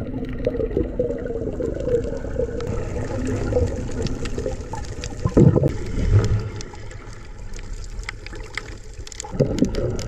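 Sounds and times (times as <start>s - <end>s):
underwater rumble and water noise: 0.0s - 10.0s.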